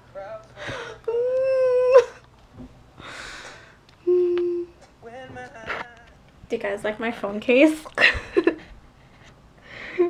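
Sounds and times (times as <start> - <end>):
woman humming: 1.0 - 2.2, 4.0 - 4.8
woman vocalising wordlessly: 1.1 - 2.2, 4.0 - 4.8.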